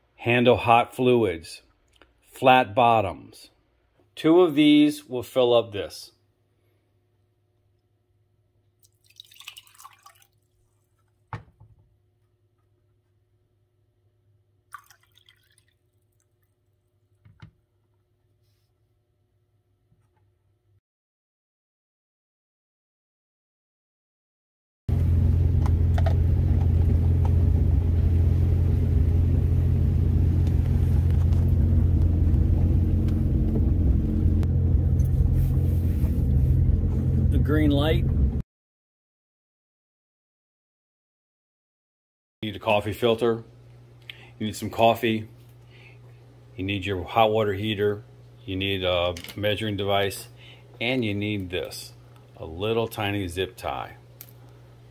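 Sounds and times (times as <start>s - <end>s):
water pouring into a mug: 8.8s - 10.7s, 14.7s - 16.5s
boat engine idling: 24.9s - 38.4s.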